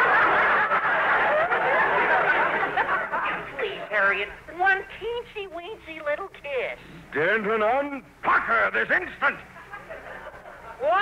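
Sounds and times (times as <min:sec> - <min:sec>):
studio audience laughing: 0:00.0 - 0:04.0, 0:09.5 - 0:11.0.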